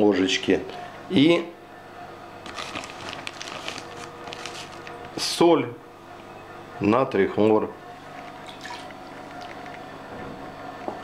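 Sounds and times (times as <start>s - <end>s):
plastic bag crinkling: 2.4s - 5.2s.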